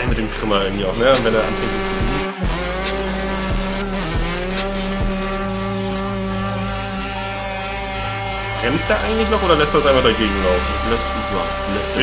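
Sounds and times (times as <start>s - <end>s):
motorcycle engine revving: 0.0s - 12.0s.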